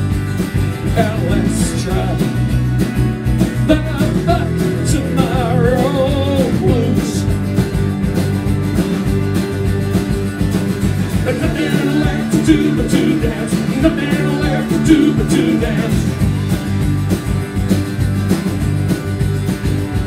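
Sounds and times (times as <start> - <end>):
drums: 0.0 - 20.0
electric bass: 0.0 - 20.0
strummed guitars: 0.0 - 20.0.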